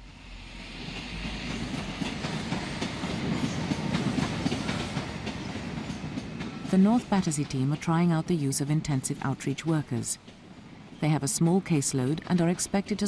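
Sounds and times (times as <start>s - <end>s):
passenger train rumbling past: 0.0s - 13.0s
train wheels clattering: 0.9s - 7.8s.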